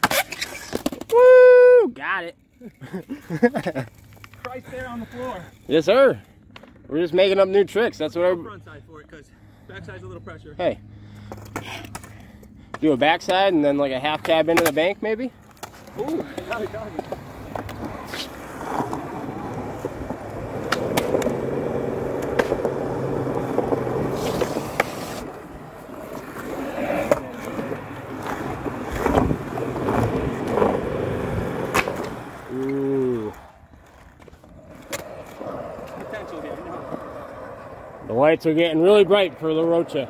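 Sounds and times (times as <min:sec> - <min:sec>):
skateboard wheels rolling on concrete: 0:00.0 - 0:08.7, 0:09.7 - 0:40.0
skateboard clacking on ground: 0:12.7 - 0:38.0.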